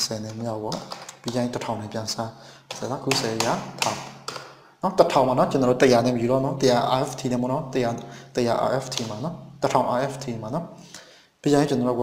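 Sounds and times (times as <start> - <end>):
man speaking: 0.0 - 10.8, 11.4 - 12.0.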